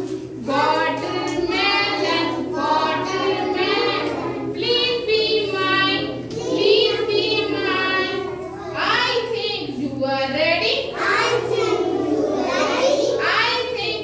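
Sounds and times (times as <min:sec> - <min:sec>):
young children singing: 0:00.0 - 0:14.0.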